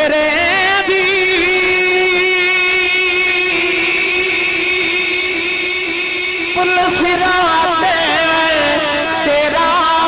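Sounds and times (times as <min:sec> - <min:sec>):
man singing a long note: 0:00.0 - 0:10.0.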